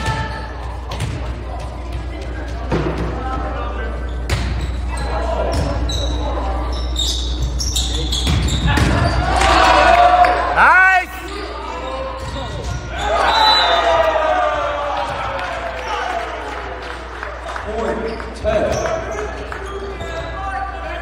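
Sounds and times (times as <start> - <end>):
sneakers squeaking on court: 3.8 - 9.3, 18.0 - 20.8.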